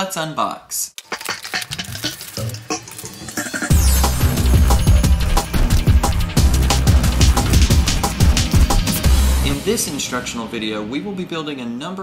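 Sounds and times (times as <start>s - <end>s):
plastic bag crinkling: 1.0s - 3.4s
drum and bass music: 1.0s - 10.7s.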